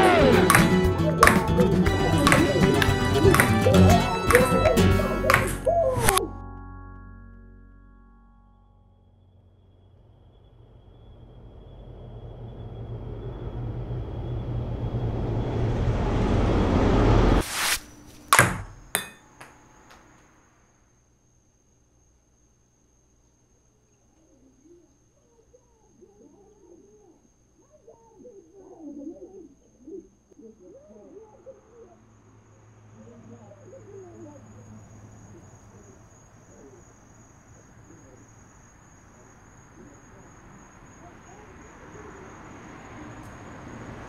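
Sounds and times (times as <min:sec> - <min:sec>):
crickets chirping: 0:00.0 - 0:06.4, 0:08.4 - 0:44.0
ping pong ball bouncing: 0:00.4 - 0:06.2, 0:18.3 - 0:19.6.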